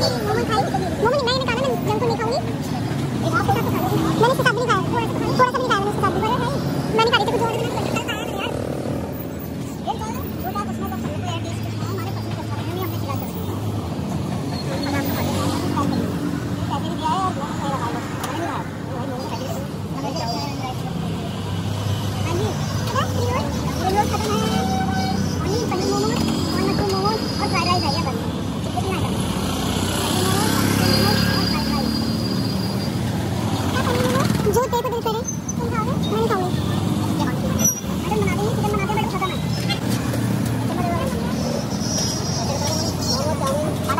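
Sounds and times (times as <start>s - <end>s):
indistinct voices talking: 0.0s - 43.9s
street traffic: 0.0s - 43.9s
vehicle engines running: 0.0s - 43.9s.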